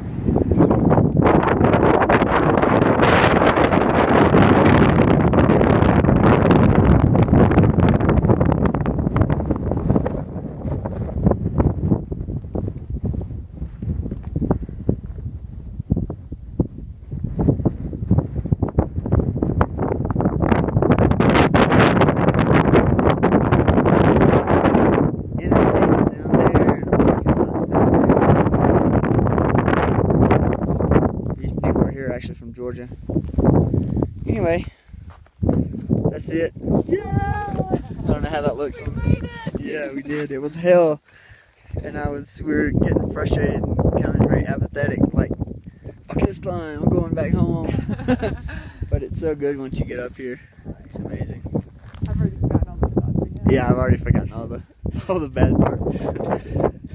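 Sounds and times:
strong wind buffeting microphone: 0.0 - 56.9.

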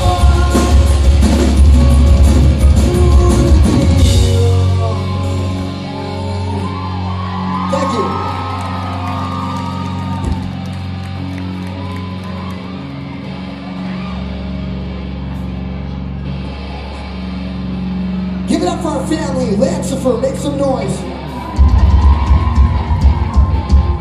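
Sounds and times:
guitars and bass sustaining chords: 0.0 - 24.0
shouting and crowd noise: 0.0 - 24.0.

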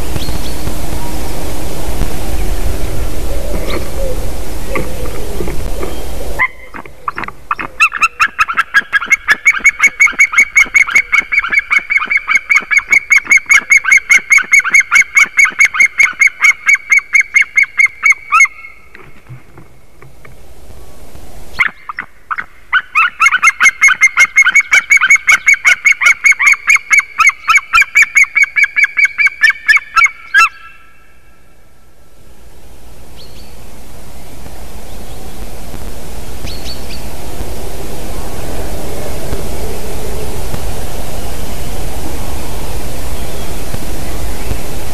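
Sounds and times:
eagles yelping calls: 3.1 - 18.8.

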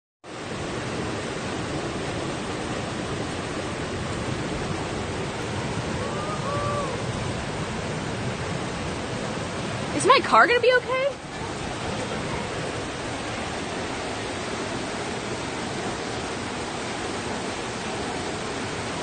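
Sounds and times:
water rushing: 0.2 - 19.0.

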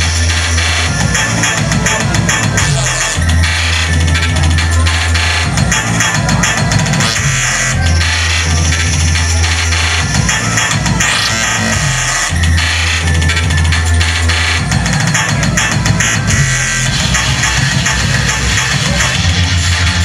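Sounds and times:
loud electronic club music: 0.0 - 20.0.

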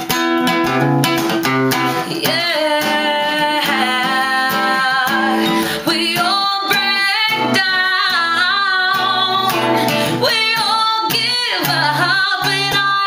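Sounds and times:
acoustic guitar: 0.0 - 13.0
woman singing: 1.9 - 13.0.

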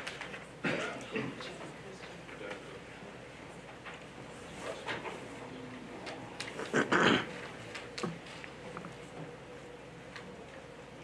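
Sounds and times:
loud cough: 0.6 - 1.4, 6.7 - 7.3.

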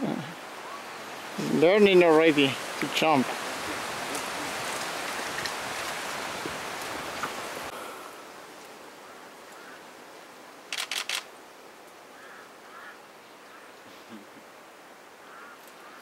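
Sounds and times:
steady hiss: 0.0 - 16.0
camera shutter firing: 10.7 - 11.3.

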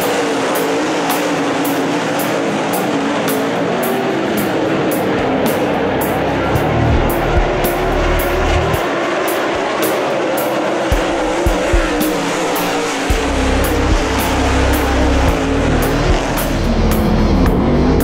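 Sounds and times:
race car engines: 0.0 - 18.0
rock music: 0.0 - 18.0.

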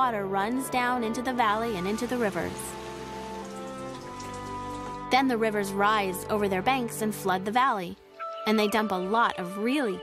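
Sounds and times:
soft background music: 0.0 - 10.0
water trickling down rocks: 1.2 - 5.3.

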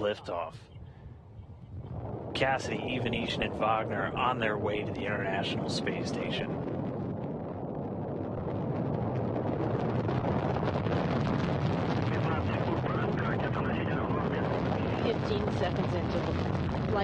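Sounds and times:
rocket engines roaring: 0.0 - 0.7, 1.6 - 17.0.

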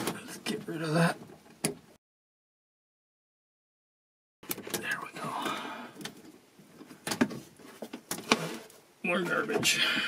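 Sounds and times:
cables rustling and scraping: 4.5 - 10.0.

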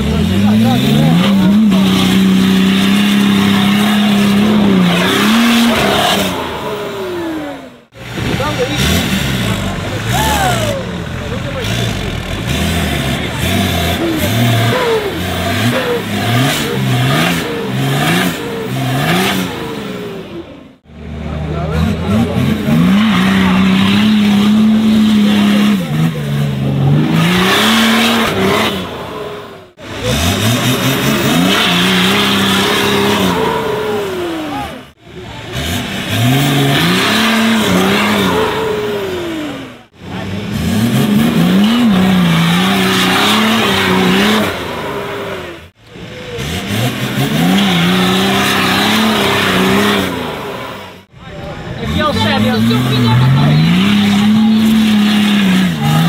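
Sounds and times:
engine revving hard: 0.0 - 51.1, 51.7 - 56.0.

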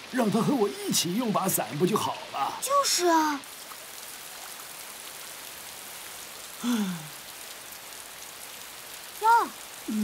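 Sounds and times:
heavy rain: 0.0 - 10.0
boy sighing: 6.6 - 7.2.

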